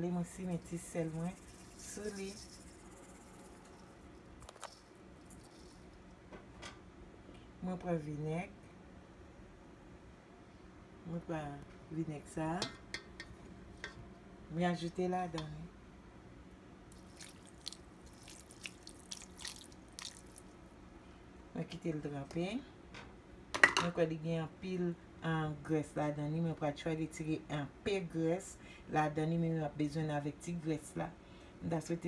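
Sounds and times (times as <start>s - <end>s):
liquid splashing and dripping: 16.9s - 20.6s.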